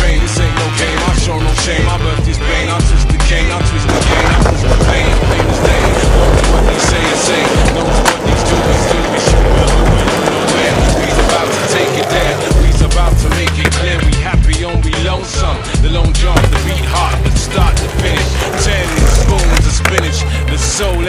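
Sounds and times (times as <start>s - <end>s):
hip-hop music: 0.0s - 21.0s
skateboard wheels rolling on asphalt: 0.1s - 15.1s, 16.2s - 21.0s.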